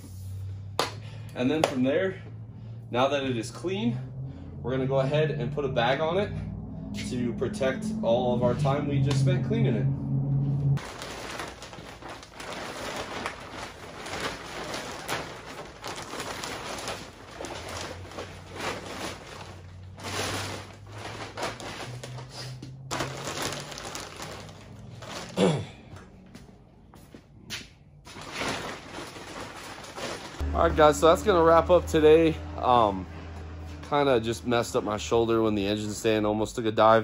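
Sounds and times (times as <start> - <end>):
plastic bag crinkling: 10.8 - 25.6, 28.1 - 30.4.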